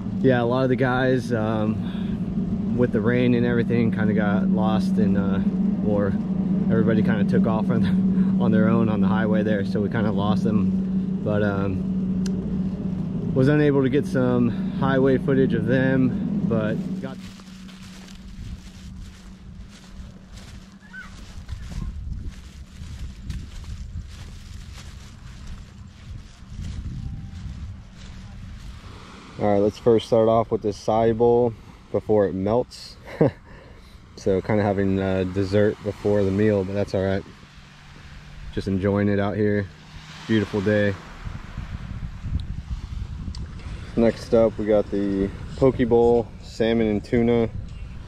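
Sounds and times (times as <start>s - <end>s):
wind buffeting microphone: 0.0s - 31.6s, 34.2s - 48.0s
steady low hum: 0.0s - 48.0s
footsteps on sand and dry leaves: 13.5s - 30.0s, 39.4s - 41.8s.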